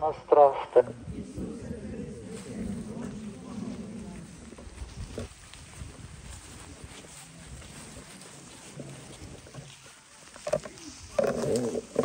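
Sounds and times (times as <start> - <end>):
faint voices: 0.0 - 12.0
crowd walking over dry leaves: 0.4 - 12.0.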